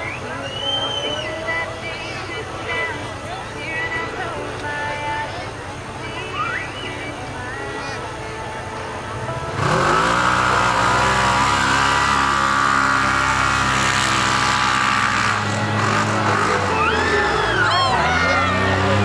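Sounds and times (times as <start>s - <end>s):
engines at full throttle: 0.0s - 19.0s.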